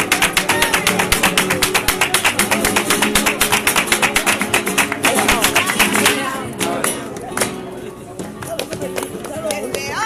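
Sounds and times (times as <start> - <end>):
crowd clapping in rhythm: 0.0 - 7.8
flamenco guitars strumming: 0.0 - 10.0.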